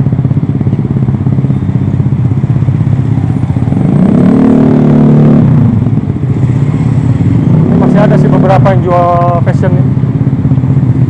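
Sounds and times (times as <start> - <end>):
road traffic engines: 0.0 - 11.0
engine revving: 3.0 - 9.9.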